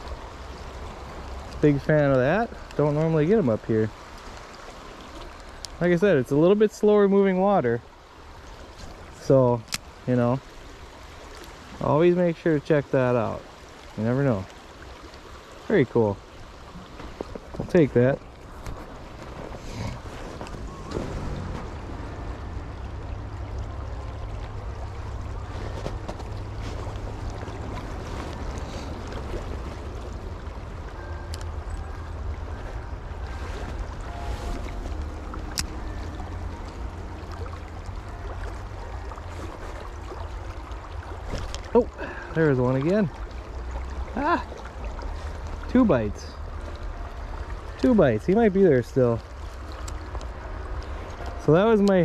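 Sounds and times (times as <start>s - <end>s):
stream water running: 0.0s - 52.0s.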